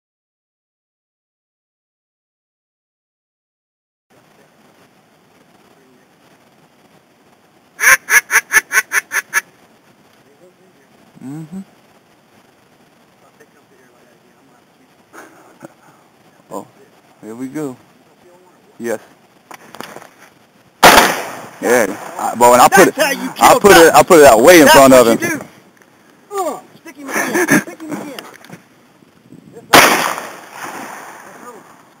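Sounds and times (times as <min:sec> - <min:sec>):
duck call quacks: 0:07.8 - 0:09.5
shotgun shot: 0:20.8 - 0:22.3, 0:29.7 - 0:31.8.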